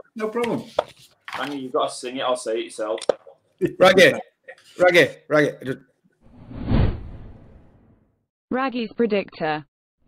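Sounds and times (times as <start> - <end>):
whoosh with low rumble: 6.4 - 7.8.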